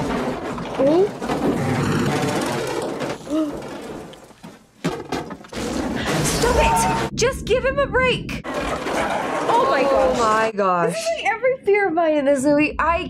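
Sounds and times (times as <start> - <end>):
crash of falling debris: 0.0 - 7.1, 8.5 - 10.3.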